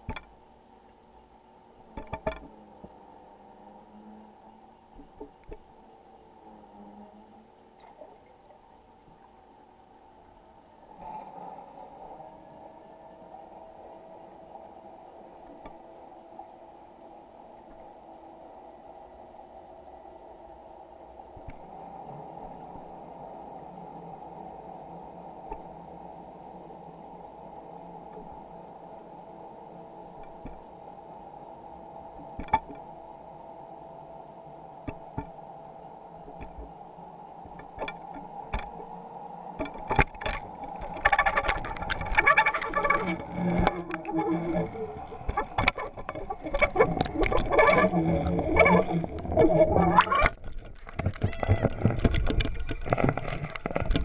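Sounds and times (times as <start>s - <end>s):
muffled underwater hum: 0.0s - 54.0s.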